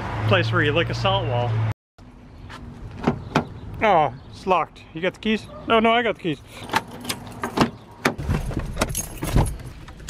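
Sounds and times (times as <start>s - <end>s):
car keys jangling: 8.5s - 9.7s.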